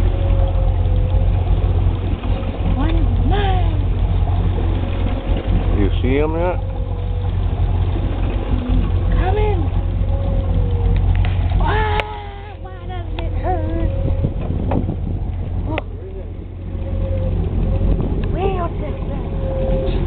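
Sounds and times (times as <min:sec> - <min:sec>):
boat motor rumbling: 0:00.0 - 0:20.0.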